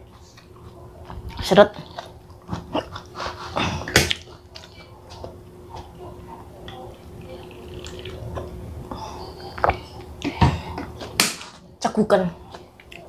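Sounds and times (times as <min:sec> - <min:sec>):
gulping and swallowing: 0:00.4 - 0:11.0.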